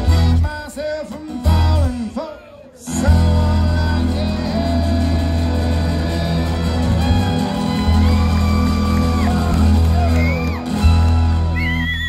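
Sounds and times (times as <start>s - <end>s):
string band playing: 2.9s - 11.6s
audience whoop: 6.8s - 12.0s.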